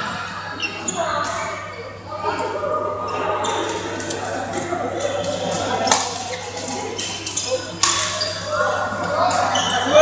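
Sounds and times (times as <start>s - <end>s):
people talking in echoing hall: 0.0s - 10.0s.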